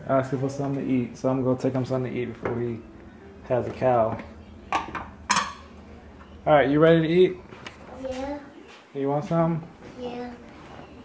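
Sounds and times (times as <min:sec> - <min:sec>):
dishes and cutlery clattering: 0:04.7 - 0:05.7.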